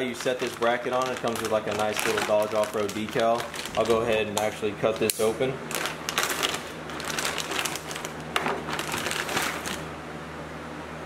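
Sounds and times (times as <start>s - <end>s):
plastic bag crinkling: 0.0s - 9.9s.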